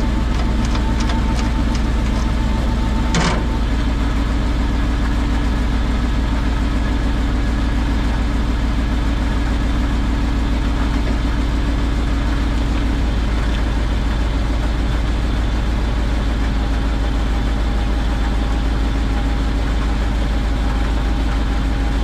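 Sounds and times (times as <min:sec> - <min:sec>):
metallic clank: 0:00.0 - 0:03.9
truck engine idling: 0:00.0 - 0:22.0.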